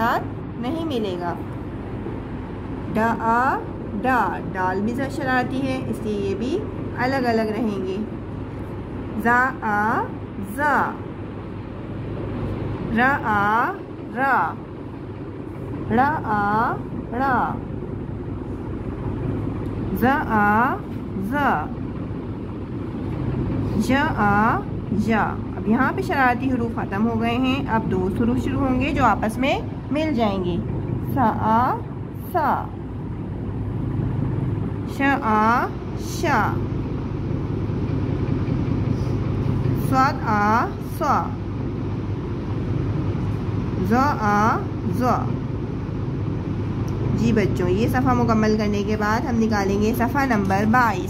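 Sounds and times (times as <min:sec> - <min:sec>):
low background rumble: 0:00.0 - 0:51.0.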